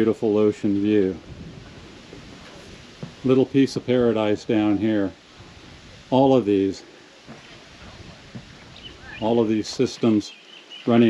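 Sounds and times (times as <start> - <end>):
soft hiss of breeze: 0.0 - 11.0
faint soft thumps: 1.2 - 3.4, 5.3 - 6.1, 7.2 - 8.8.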